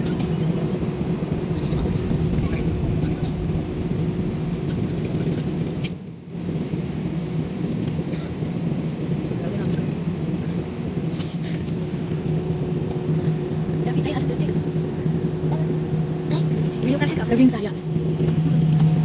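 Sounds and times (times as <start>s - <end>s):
jet cabin engine hum: 0.0s - 19.0s.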